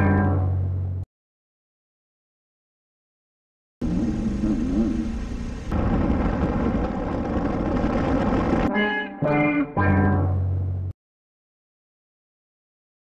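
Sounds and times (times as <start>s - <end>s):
motorcycle riding noise: 3.8s - 8.7s.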